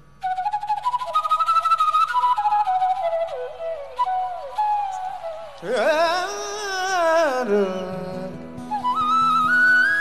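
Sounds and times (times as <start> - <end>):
bamboo flute playing: 0.2 - 10.0.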